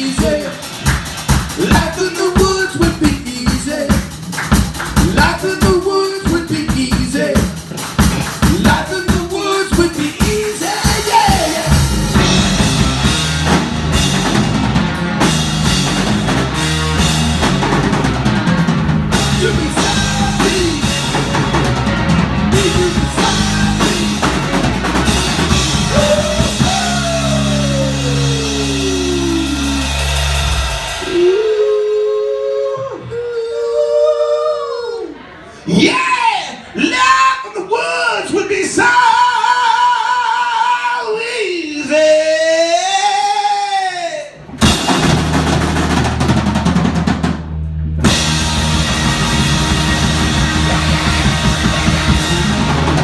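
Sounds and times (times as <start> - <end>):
drum and cymbal hits: 0.0 - 31.6, 44.5 - 53.0
rock band playing: 0.0 - 31.7, 44.4 - 53.0.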